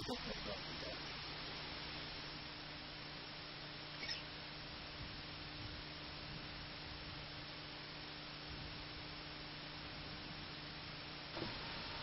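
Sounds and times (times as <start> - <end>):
microphone hiss and mains hum: 0.0 - 12.0
brief high squeak: 4.0 - 4.2.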